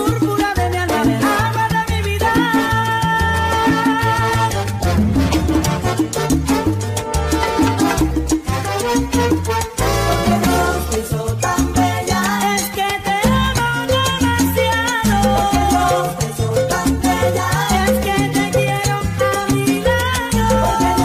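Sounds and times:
instrumental salsa music: 0:00.0 - 0:21.0.

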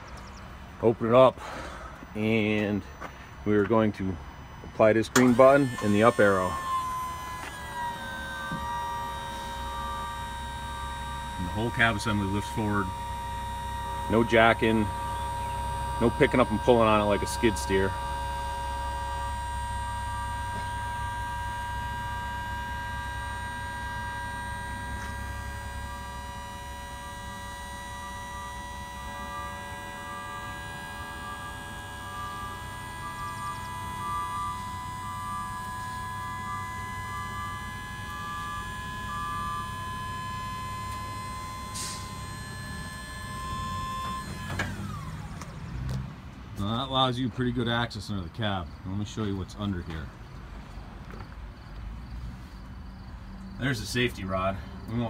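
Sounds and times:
hydraulic cab tilt whine: 0:00.0 - 0:55.0
broken on-off tone: 0:00.6 - 0:46.0.

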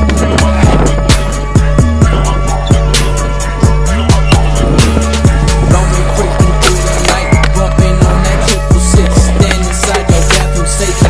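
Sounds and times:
held chords: 0:00.0 - 0:11.0.

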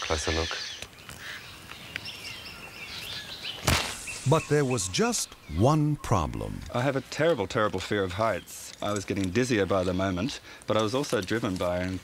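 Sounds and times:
birds chirping: 0:00.0 - 0:12.0
slingshot firing: 0:03.6 - 0:04.2.

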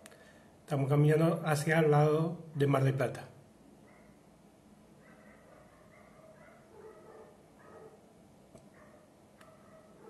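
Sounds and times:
distant dogs barking: 0:03.8 - 0:04.3, 0:04.9 - 0:08.1, 0:08.7 - 0:10.0.

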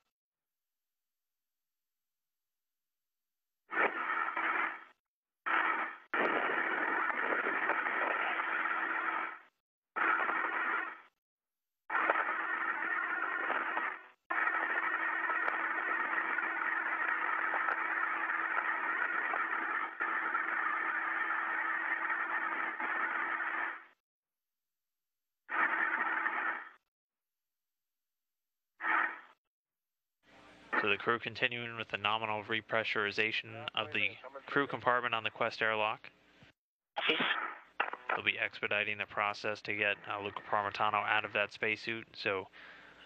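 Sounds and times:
radio hiss with low hum: 0:03.7 - 0:11.1, 0:11.9 - 0:23.9, 0:25.5 - 0:26.8, 0:28.8 - 0:29.3, 0:30.3 - 0:43.0.

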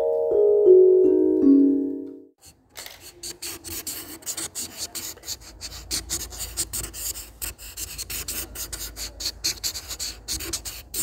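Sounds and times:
pen scratching on paper: 0:02.4 - 0:11.0.

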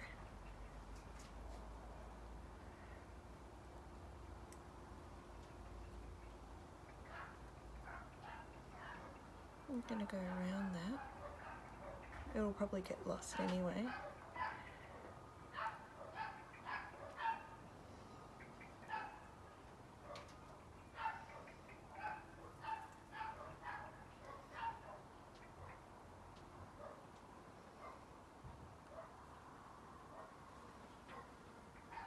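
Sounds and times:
dogs barking faintly: 0:05.4 - 0:32.0.

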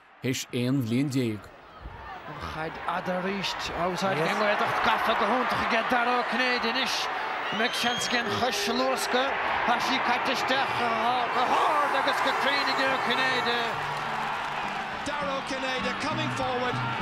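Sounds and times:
crowd noise: 0:00.0 - 0:17.0
man commentating: 0:02.5 - 0:13.8.

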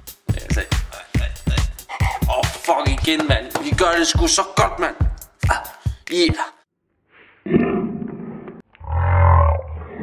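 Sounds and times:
rough vocal sound: 0:00.3 - 0:02.7.

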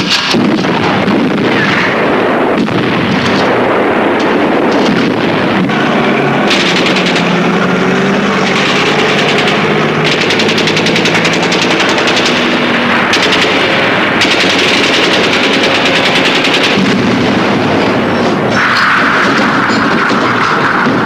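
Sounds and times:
low steady drone: 0:00.0 - 0:21.0
machine-gun fire: 0:00.0 - 0:21.0.

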